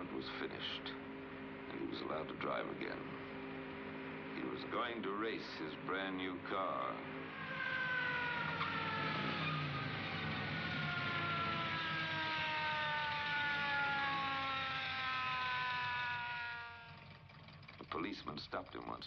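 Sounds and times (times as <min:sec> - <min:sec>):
car engine running at speed: 0:00.0 - 0:19.0
road and wind noise: 0:00.0 - 0:19.0.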